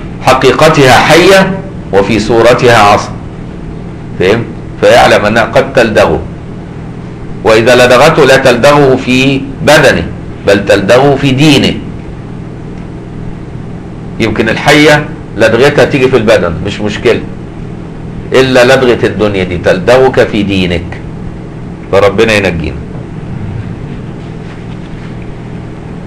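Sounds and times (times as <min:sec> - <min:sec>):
low rumble and hiss: 0:00.0 - 0:26.0
low hum: 0:22.6 - 0:26.0.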